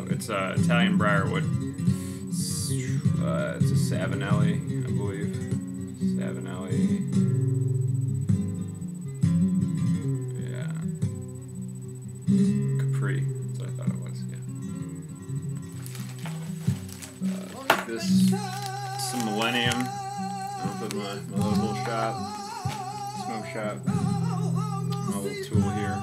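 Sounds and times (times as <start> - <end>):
flamenco acoustic guitar music: 0.0 - 26.0.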